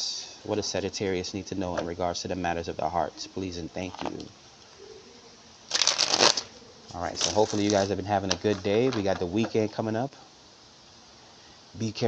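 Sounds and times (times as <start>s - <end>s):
cards being riffle-shuffled: 5.7s - 6.5s, 7.1s - 9.4s.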